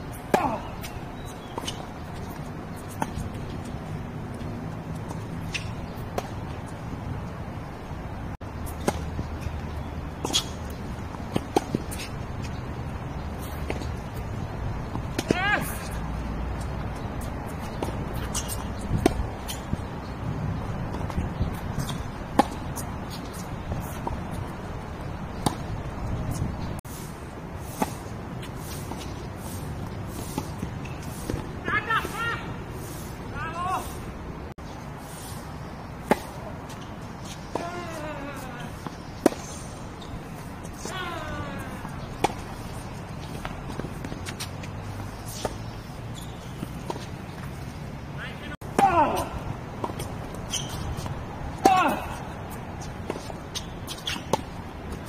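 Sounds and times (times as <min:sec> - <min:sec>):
tennis balls bouncing on hard court: 0:00.1 - 0:07.4, 0:08.5 - 0:26.8, 0:35.9 - 0:48.0, 0:48.6 - 0:55.0
tennis balls struck by rackets: 0:00.1 - 0:07.5, 0:08.5 - 0:26.7, 0:35.6 - 0:48.0, 0:48.6 - 0:55.0.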